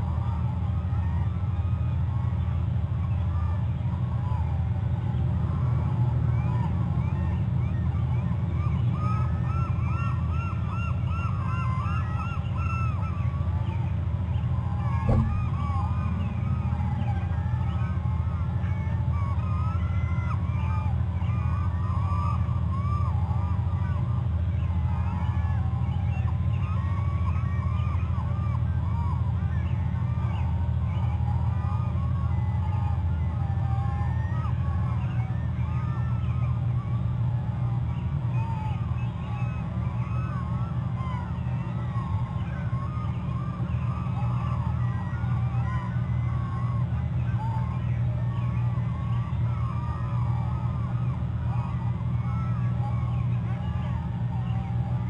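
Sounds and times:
chorus of animal calls: 0.0 - 55.0
steady low hum: 0.0 - 55.0
sharp knock: 15.1 - 15.5.

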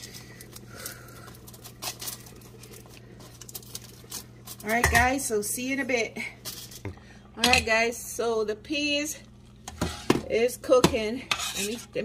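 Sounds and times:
aluminium foil crinkling: 0.0 - 5.4, 6.4 - 6.8
faint steady hum: 0.0 - 12.0.

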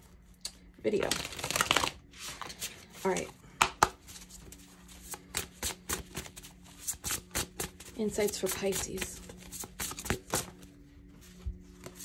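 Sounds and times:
cards being shuffled: 0.9 - 12.0.

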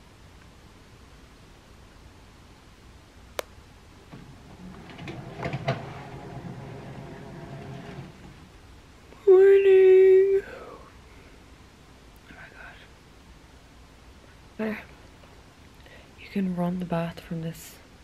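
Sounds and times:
motorised curtain track humming: 4.1 - 8.6.

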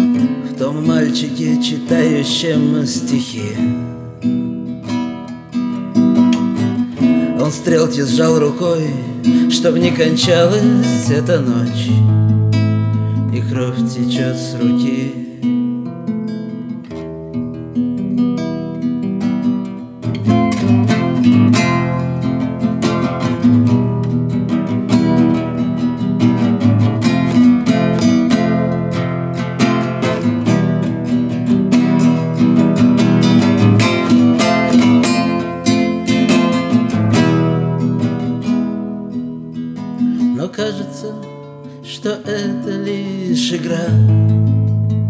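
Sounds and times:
acoustic guitar strumming: 0.0 - 45.0.

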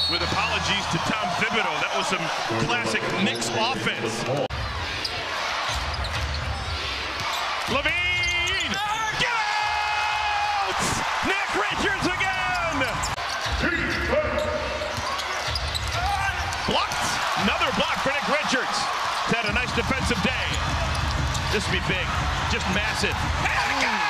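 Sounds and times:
arena crowd noise: 0.0 - 24.0.

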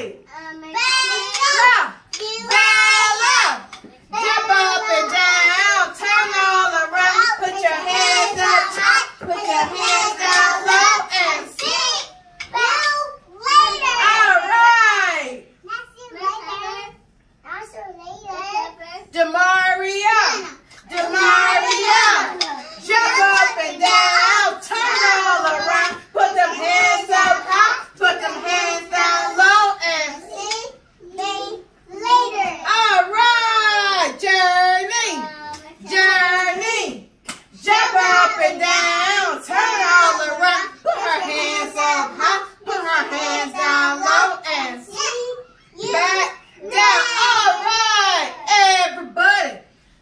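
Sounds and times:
children singing: 0.7 - 14.4, 20.2 - 33.7, 37.6 - 48.4.

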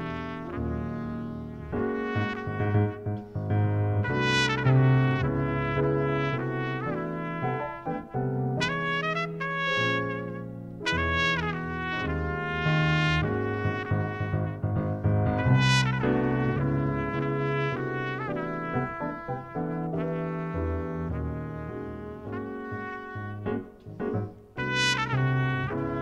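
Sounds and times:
keyboard chords: 0.0 - 26.0
low bass notes: 0.0 - 26.0
trumpet playing jazz: 0.0 - 26.0.

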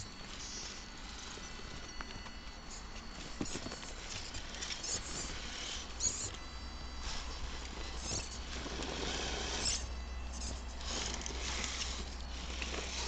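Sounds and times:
electric motor whine: 0.0 - 13.0.

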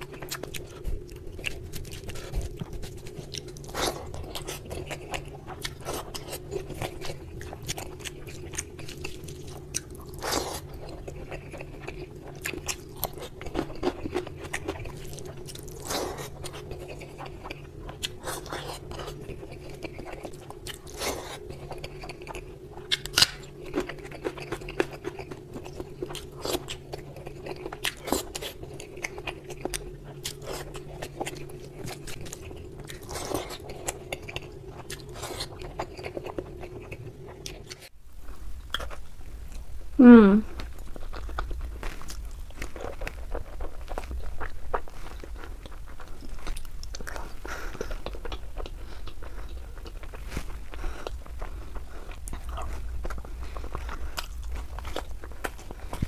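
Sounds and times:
chewing: 0.0 - 39.8, 40.4 - 56.0
steady low hum: 0.0 - 56.0.

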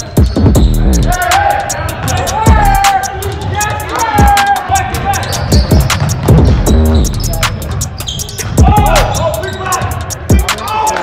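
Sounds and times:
background music with quick beat: 0.0 - 11.0
sneaker squeaks on hardwood: 5.1 - 8.5.

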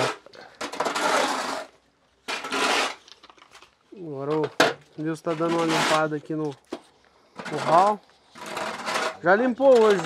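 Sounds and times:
hoe scraping wet dirt: 0.0 - 3.1, 5.1 - 6.4, 7.4 - 10.0.

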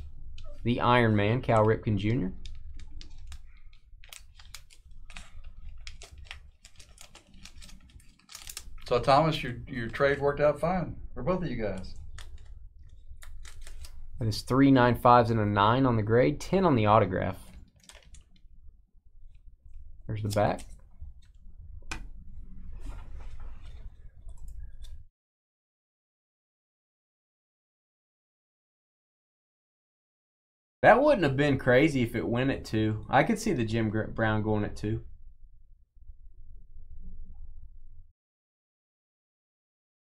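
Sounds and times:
low steady hum: 0.0 - 25.1, 30.8 - 38.1.

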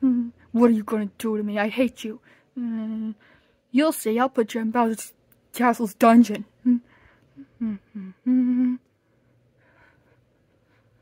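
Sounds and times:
person humming: 0.0 - 0.5, 6.6 - 8.9.

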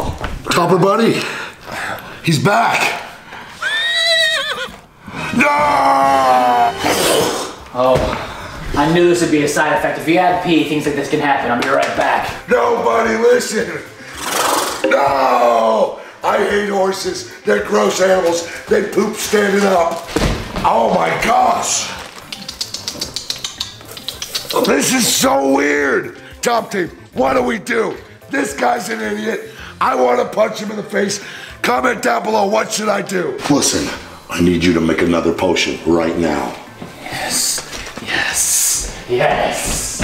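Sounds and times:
man imitating horse whinny: 3.6 - 7.6
man shouting no: 5.3 - 7.2
plastic bag crinkling: 21.0 - 22.7.

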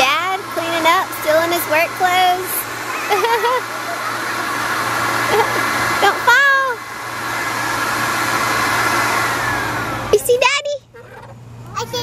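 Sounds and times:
leaf blower running: 0.0 - 10.9.

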